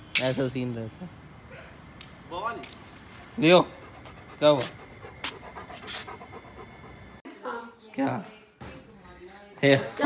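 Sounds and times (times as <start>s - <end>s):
dog sniffing in noisy huffs: 3.1s - 7.2s.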